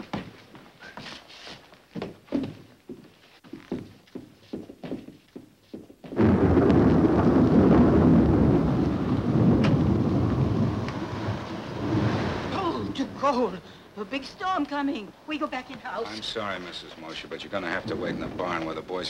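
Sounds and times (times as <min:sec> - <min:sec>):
footsteps on wooden staircase: 0:00.0 - 0:06.2
thunder rumbling: 0:06.2 - 0:14.0, 0:17.3 - 0:19.0.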